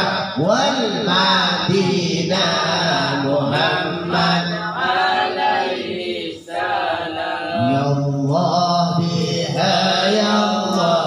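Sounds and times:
lead voice on microphone: 0:00.0 - 0:05.0, 0:07.6 - 0:11.0
men chanting devotional song: 0:00.0 - 0:11.0.

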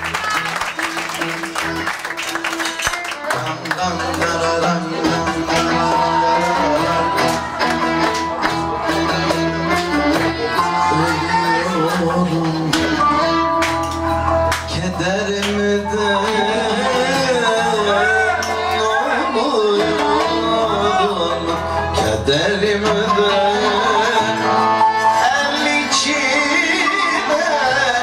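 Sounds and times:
plucked strings: 0:00.0 - 0:28.0
violin melody: 0:00.0 - 0:28.0
man singing: 0:03.1 - 0:28.0
plucked double bass: 0:03.4 - 0:19.1.

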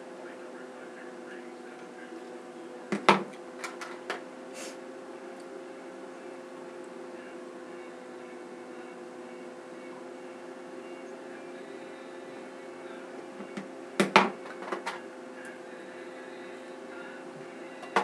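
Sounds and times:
steady background hum: 0:00.0 - 0:18.0.

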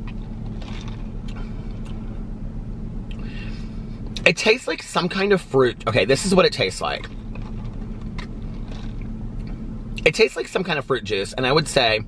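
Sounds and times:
car cabin low hum: 0:00.0 - 0:12.0.

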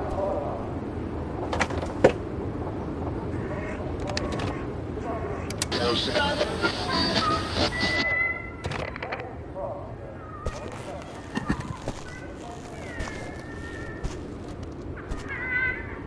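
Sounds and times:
garbled radio voices: 0:03.3 - 0:08.1
radio static hiss: 0:05.7 - 0:08.1, 0:10.5 - 0:15.3
steady radio whistle: 0:05.7 - 0:08.5.

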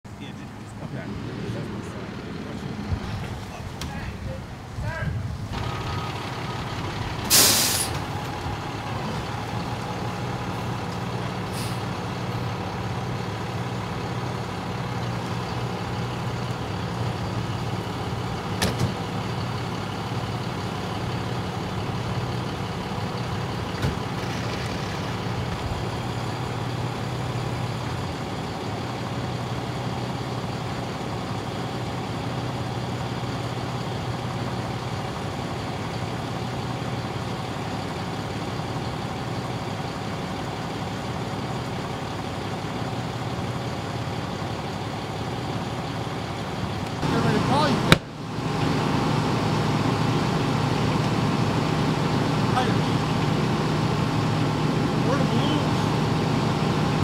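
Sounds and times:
diesel engine idling: 0:00.0 - 0:57.0
air brakes hissing: 0:07.2 - 0:08.1, 0:11.4 - 0:11.9.

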